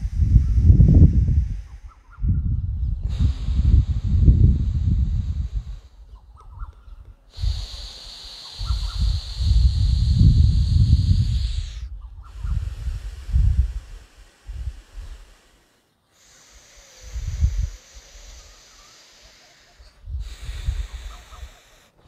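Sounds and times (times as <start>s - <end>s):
breath gusts on microphone: 0.0s - 22.0s
deep breaths through nostril: 0.0s - 22.0s.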